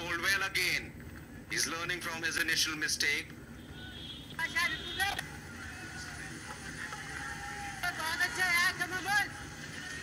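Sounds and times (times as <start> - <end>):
stadium ground noise: 3.2 - 10.0.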